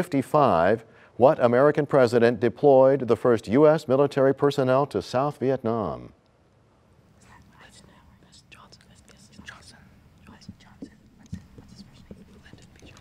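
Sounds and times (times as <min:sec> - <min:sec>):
people whispering: 0:07.2 - 0:13.0.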